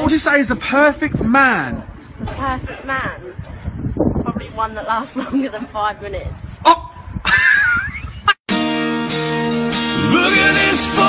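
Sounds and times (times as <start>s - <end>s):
guitar music: 8.5s - 11.0s.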